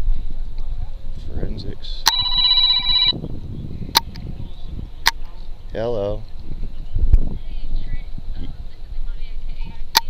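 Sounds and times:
phone ringtone chord: 2.1s - 3.2s.

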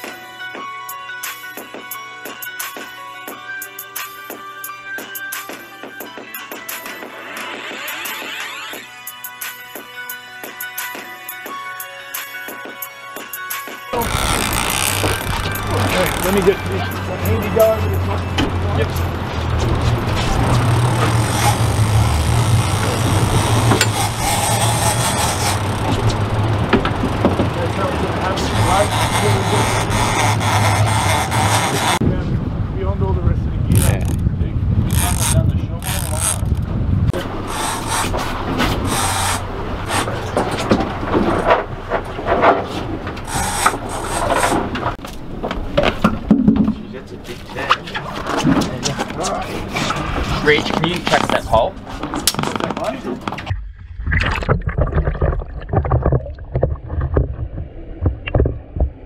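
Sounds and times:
boat motor running: 13.9s - 32.1s, 33.7s - 59.0s
fishing reel winding: 14.0s - 16.6s, 20.5s - 26.1s, 28.2s - 32.0s, 33.7s - 34.2s, 34.9s - 36.6s, 37.5s - 38.2s, 38.8s - 40.0s, 43.3s - 44.5s
wind and sea noise: 14.0s - 54.6s, 55.2s - 59.0s
handling knocks and clicks: 18.3s - 27.6s.

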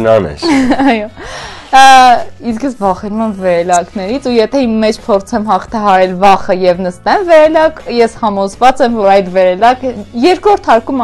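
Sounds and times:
woman talking: 0.7s - 11.0s.

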